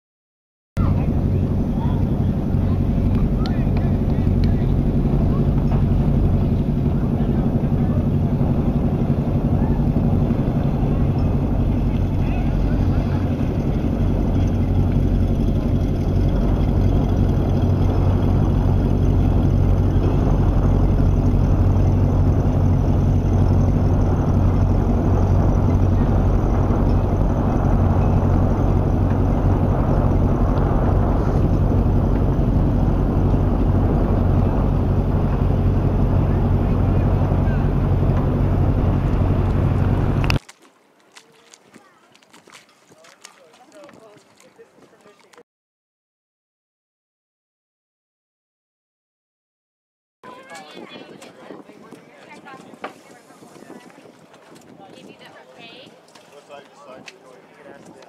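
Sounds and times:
boat engine droning: 0.8s - 45.4s.

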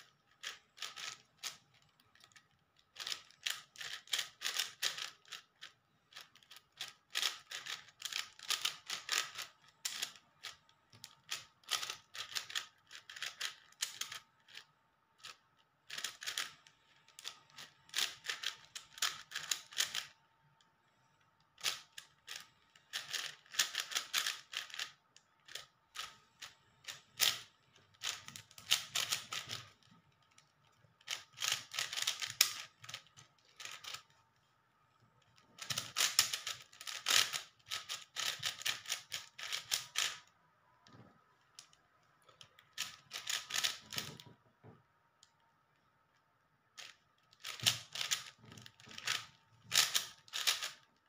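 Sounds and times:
speed cube clicking: 0.0s - 20.2s, 21.6s - 30.4s, 31.0s - 34.1s, 35.6s - 40.3s, 42.6s - 44.2s, 46.8s - 50.9s.

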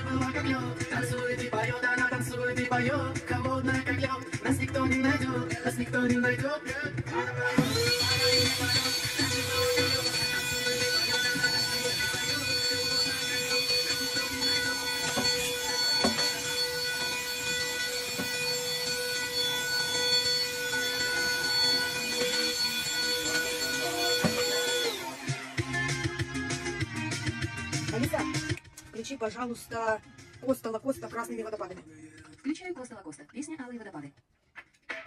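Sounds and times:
handheld vacuum cleaner whining: 7.2s - 26.6s.

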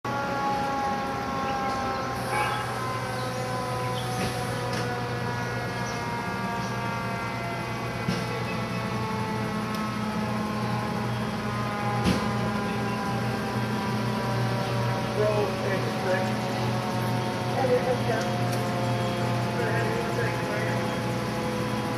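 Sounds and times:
diesel engines low hum: 0.0s - 21.9s
higher multi-tone drone: 0.1s - 21.9s.

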